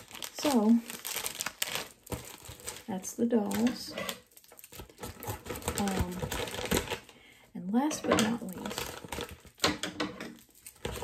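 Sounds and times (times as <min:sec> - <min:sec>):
plastic bags crinkling: 0:00.0 - 0:07.2, 0:07.9 - 0:11.0.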